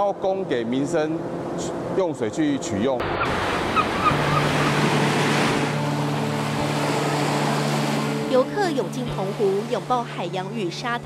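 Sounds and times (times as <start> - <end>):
waves breaking on a beach: 3.3 - 10.0.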